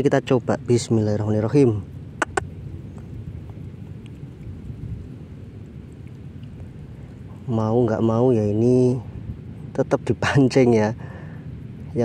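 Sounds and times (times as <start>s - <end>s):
low rumbling noise: 0.0s - 12.0s
sharp clicks: 2.2s - 2.5s.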